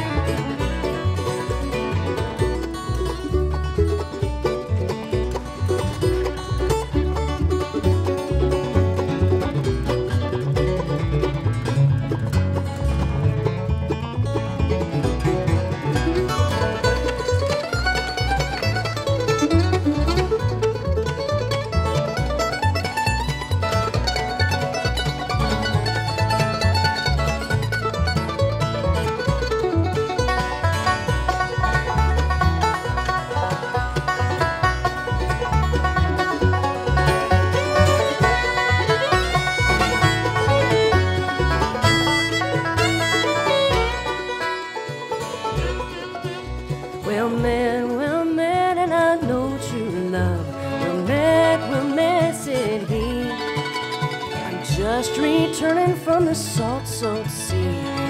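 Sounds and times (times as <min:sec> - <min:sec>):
acoustic guitar rhythm: 0:00.0 - 0:58.0
banjo picking: 0:00.0 - 0:58.0
mandolin lead: 0:00.0 - 0:58.0
upright bass: 0:00.0 - 0:58.0.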